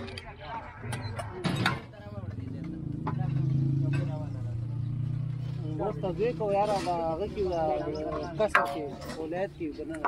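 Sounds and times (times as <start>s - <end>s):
vehicle engine humming: 2.2s - 10.0s.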